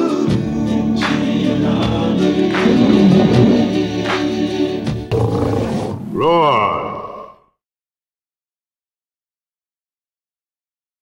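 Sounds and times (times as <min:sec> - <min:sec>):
choral music: 0:00.0 - 0:06.2
lion roaring: 0:02.5 - 0:04.0, 0:05.1 - 0:07.3.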